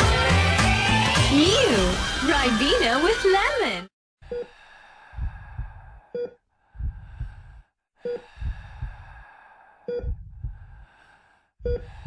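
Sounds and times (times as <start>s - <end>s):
low heartbeat thumps: 5.1s - 7.7s, 8.3s - 9.2s, 9.9s - 10.9s, 11.6s - 12.0s.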